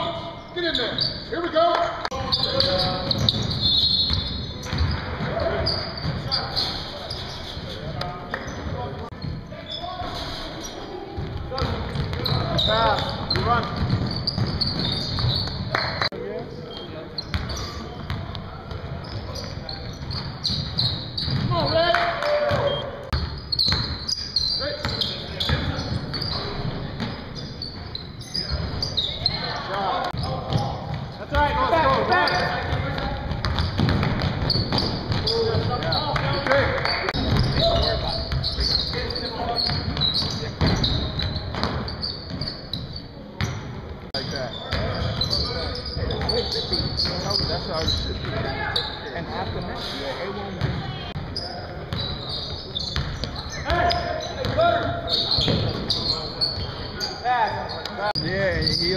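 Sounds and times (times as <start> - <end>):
players calling out: 0.0 - 43.6
sneakers squeaking: 0.0 - 58.9
basketball bouncing on hardwood: 13.2 - 15.6, 32.7 - 35.9.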